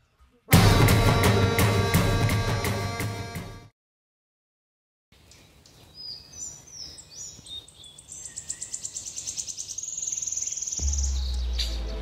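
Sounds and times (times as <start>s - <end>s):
deep bass tone: 0.5s - 3.6s, 10.8s - 12.0s
birds chirping and trilling: 5.2s - 12.0s.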